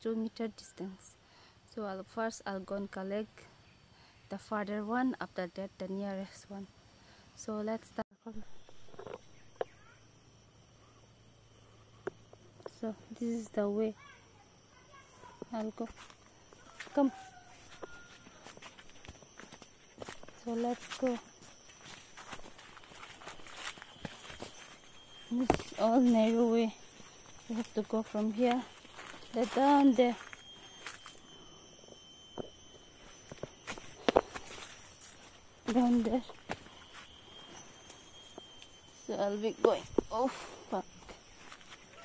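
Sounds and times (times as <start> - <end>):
thin steady high tone: 0.0 - 42.0
footsteps on dry leaves: 15.8 - 38.6, 39.2 - 42.0.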